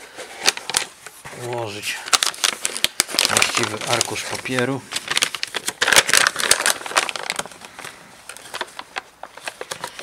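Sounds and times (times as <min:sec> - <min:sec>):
paper rustling and crinkling: 0:00.0 - 0:10.0.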